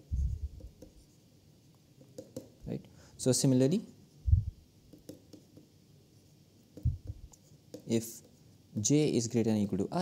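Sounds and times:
stylus tapping and scratching: 4.9s - 5.7s, 6.7s - 8.4s.

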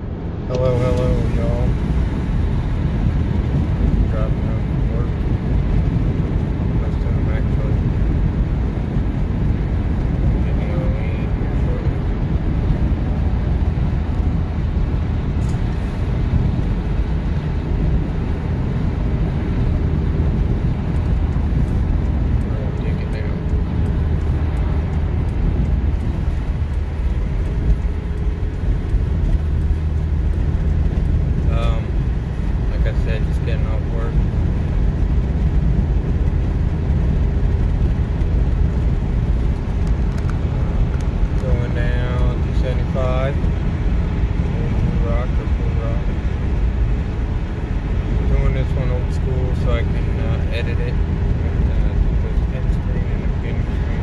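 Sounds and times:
car road and engine rumble: 0.0s - 54.0s
person speaking: 0.5s - 1.8s.

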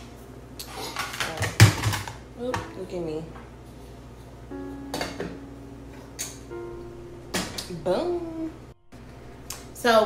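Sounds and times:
pots and pans clattering: 0.8s - 2.7s
background music of held notes: 4.5s - 9.0s.

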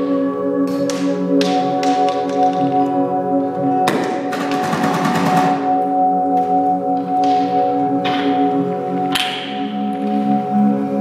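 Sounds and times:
taps and clicks: 0.6s - 3.0s, 9.1s - 10.2s.

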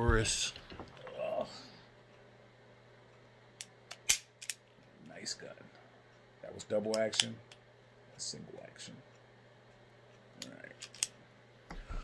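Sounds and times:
revolver dry-fire clicks: 6.1s - 7.7s, 9.2s - 11.2s.

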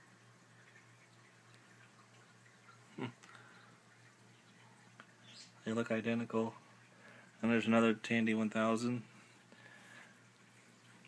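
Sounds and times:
man saying hmm: 2.9s - 3.2s.

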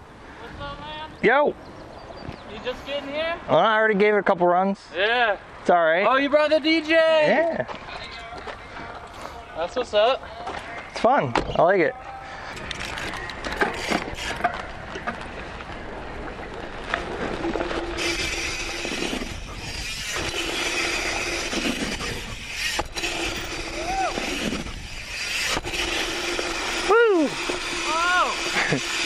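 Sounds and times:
bike tyres on dirt: 12.2s - 29.0s
wind rush: 17.1s - 25.9s
steady hum: 17.1s - 29.0s.

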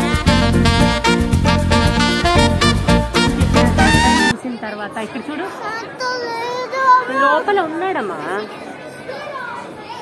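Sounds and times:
background music: 0.0s - 4.4s
indistinct chatter of voices: 4.3s - 10.0s.

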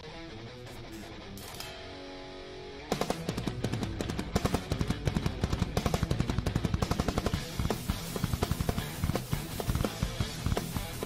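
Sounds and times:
backing music: 2.8s - 11.0s
fast drum strokes: 2.9s - 11.0s
cymbals washing: 7.0s - 11.0s.

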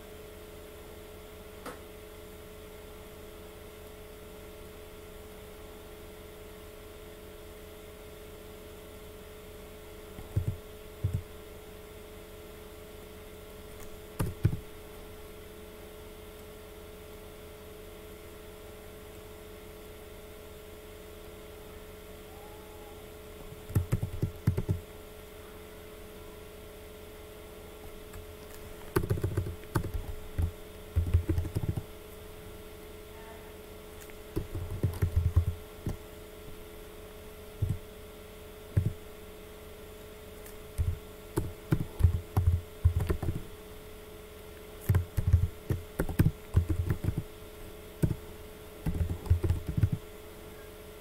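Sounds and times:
electrical hum: 0.0s - 51.0s
computer keyboard keystrokes: 10.2s - 11.3s, 13.8s - 14.6s, 23.6s - 24.8s, 28.1s - 31.9s, 34.0s - 36.0s, 37.6s - 37.8s, 38.8s - 39.0s, 40.8s - 43.4s, 44.8s - 47.3s, 48.0s - 48.2s, 48.8s - 50.0s.

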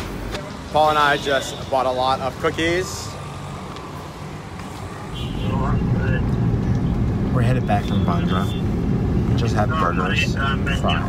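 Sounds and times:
car engine and road noise: 0.0s - 11.0s
street background hum: 0.0s - 11.0s.

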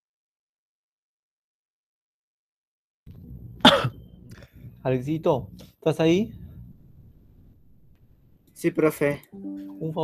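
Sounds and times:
loud cough: 3.6s - 4.0s
person speaking: 8.6s - 10.0s.

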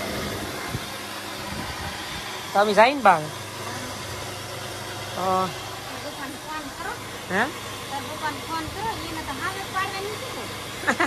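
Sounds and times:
electric flour mill grinding grain: 0.0s - 11.0s.

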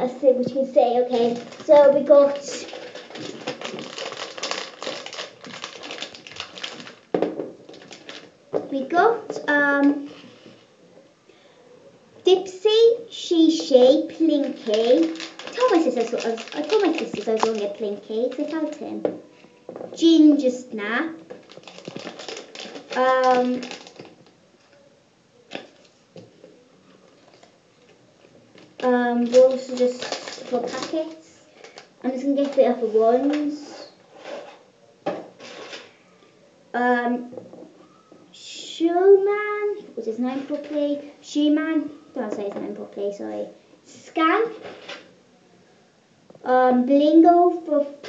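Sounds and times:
foil packets crinkling: 1.1s - 8.3s, 14.1s - 18.8s, 21.3s - 24.3s, 28.2s - 33.5s.

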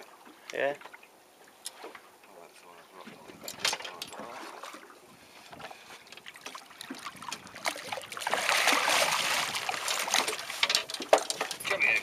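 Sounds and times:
water lapping against boat: 0.0s - 12.0s.

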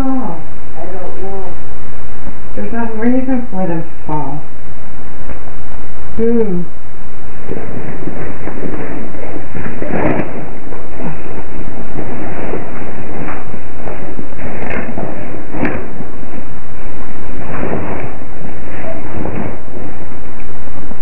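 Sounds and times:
steady microphone hiss: 0.0s - 21.0s.

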